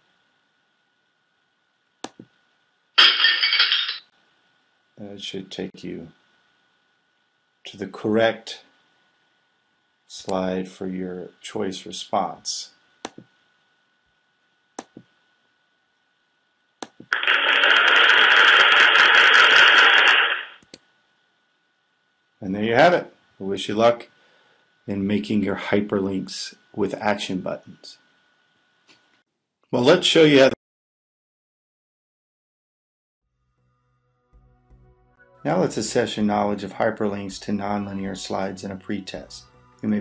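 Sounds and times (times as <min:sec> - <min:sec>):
mouse click: 0:02.0 - 0:02.3, 0:13.0 - 0:13.3
breaking glass sound effect: 0:03.0 - 0:04.1
canned applause: 0:17.2 - 0:20.5.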